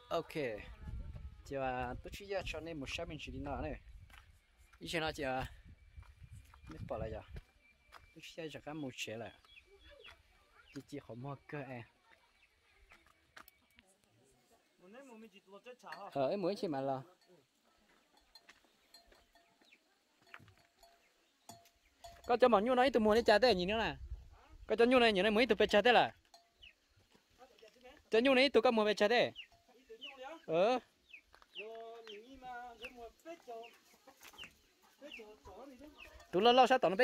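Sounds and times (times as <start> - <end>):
chickens clucking: 31.6 - 36.4.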